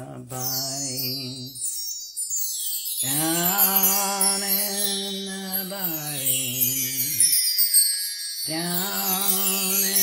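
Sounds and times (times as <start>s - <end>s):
high chiming shimmer: 0.0s - 10.0s.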